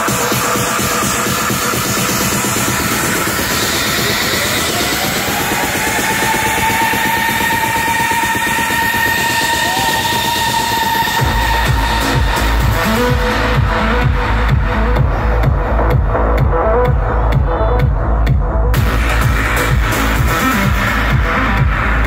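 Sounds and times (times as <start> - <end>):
heavy bass and kick drum: 0.0 - 22.0
loud techno music: 0.0 - 22.0.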